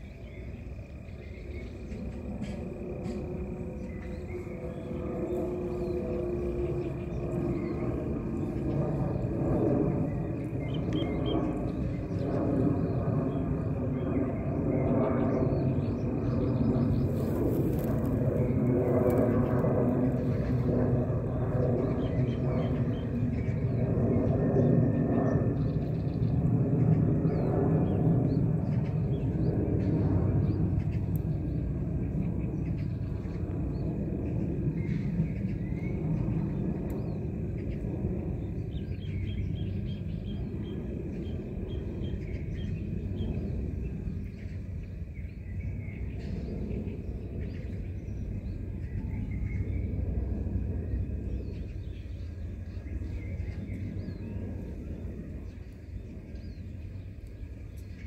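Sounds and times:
low outdoor rumble: 0.0s - 58.0s.

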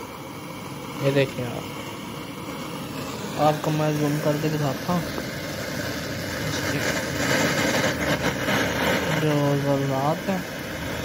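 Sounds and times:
mechanical running noise with hiss: 0.0s - 11.0s.

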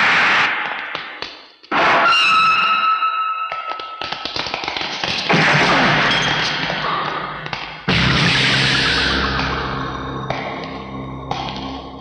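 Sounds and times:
sharp taps and clicks: 3.5s - 5.7s, 9.3s - 12.0s.

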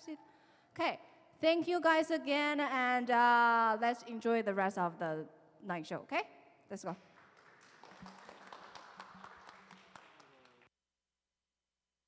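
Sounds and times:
faint scattered applause: 7.0s - 10.7s.

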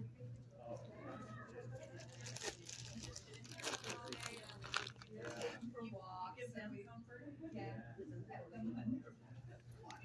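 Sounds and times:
crunching and crinkling: 1.8s - 5.6s.

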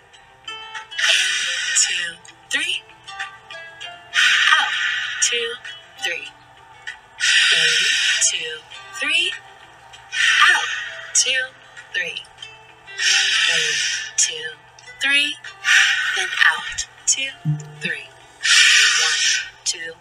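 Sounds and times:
man breathing deeply: 13.0s - 14.2s.

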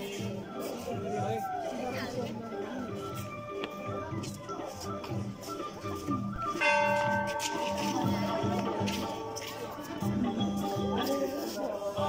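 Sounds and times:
background music with steady beat: 0.0s - 12.0s
bell ringing: 6.6s - 8.6s.

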